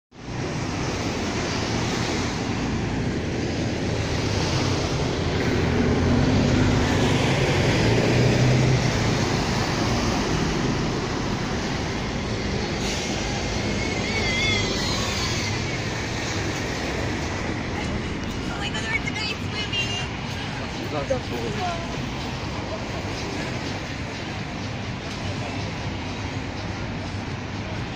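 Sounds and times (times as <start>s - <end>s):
cars passing on road: 0.1s - 27.9s.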